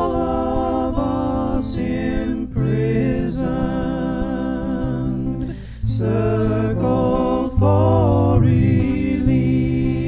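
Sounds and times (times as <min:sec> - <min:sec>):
acoustic guitar: 0:00.0 - 0:10.0
singer's breath: 0:05.4 - 0:05.9.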